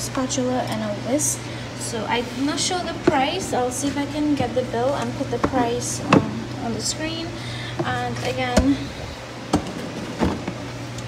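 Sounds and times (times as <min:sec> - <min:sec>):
extractor fan humming: 0:00.0 - 0:11.0.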